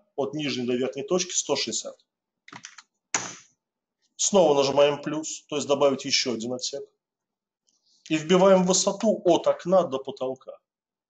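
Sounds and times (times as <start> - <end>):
keyboard typing: 2.5 - 3.4.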